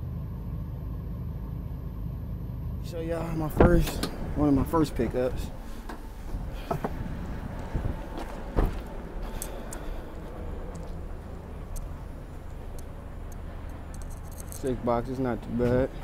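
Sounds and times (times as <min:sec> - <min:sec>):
low rumble: 0:00.0 - 0:16.0
man speaking: 0:02.8 - 0:05.6, 0:14.5 - 0:16.0.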